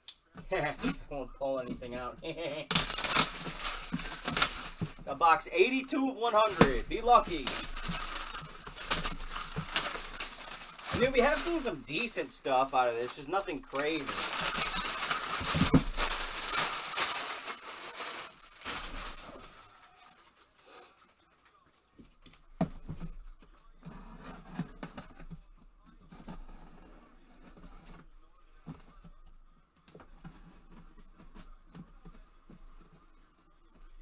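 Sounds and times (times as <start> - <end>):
plastic wrap crinkling: 0.5 - 23.2.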